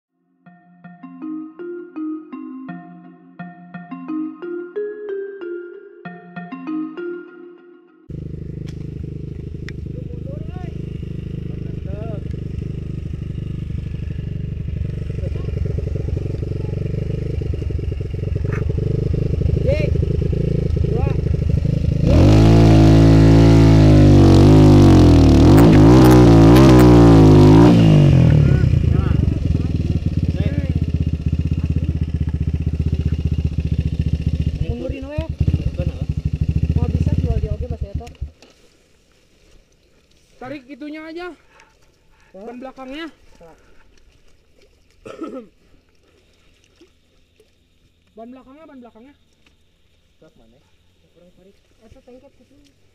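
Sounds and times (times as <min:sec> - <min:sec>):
dirt bike engine revving: 0:08.1 - 0:38.4
riders calling out: 0:08.2 - 0:38.4.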